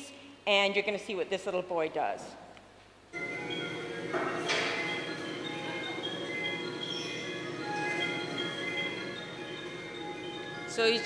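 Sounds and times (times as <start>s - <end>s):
electronic tune over loudspeakers: 3.2s - 11.0s.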